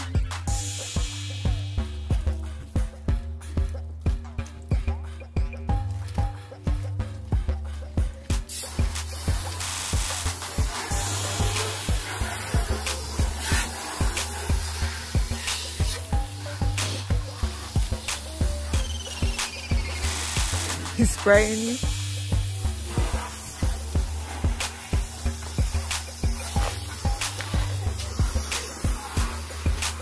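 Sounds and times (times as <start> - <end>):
hose spray hissing on car: 0.0 - 3.0, 7.6 - 30.0
background music with steady beat: 0.0 - 30.0.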